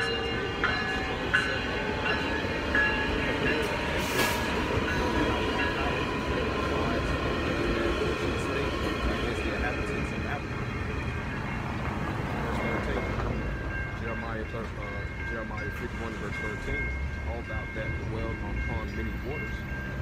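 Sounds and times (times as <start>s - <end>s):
train rumbling past: 0.0s - 20.0s.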